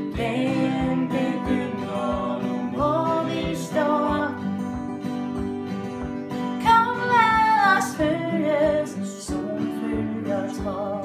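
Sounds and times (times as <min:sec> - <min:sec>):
woman singing: 0:00.0 - 0:04.5, 0:06.6 - 0:11.0
strummed acoustic guitars: 0:00.0 - 0:11.0.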